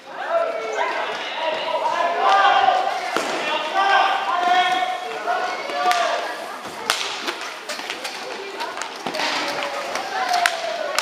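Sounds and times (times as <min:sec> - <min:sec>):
voices shouting: 0:00.0 - 0:06.7.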